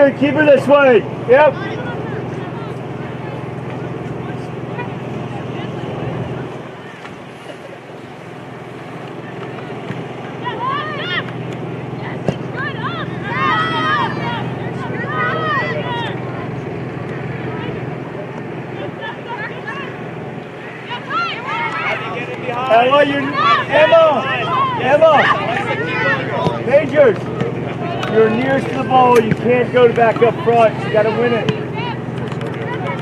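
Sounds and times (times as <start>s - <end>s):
low background hum: 0.0s - 33.0s
players shouting: 0.0s - 33.0s.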